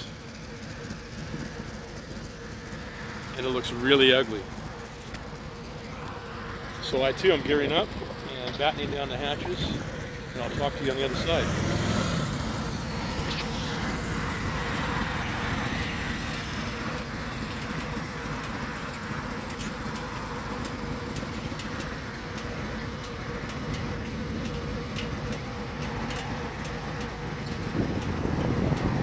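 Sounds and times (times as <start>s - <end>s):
motorcycles idling: 0.0s - 29.0s
road noise: 0.0s - 29.0s
vehicle approaching: 0.0s - 29.0s.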